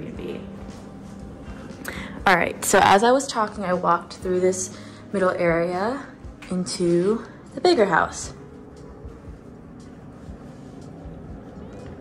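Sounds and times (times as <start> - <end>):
soft footsteps: 8.6 - 12.0.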